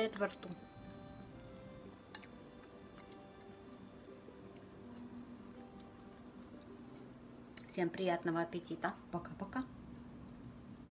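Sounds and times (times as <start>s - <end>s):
faint background music: 0.0s - 10.9s.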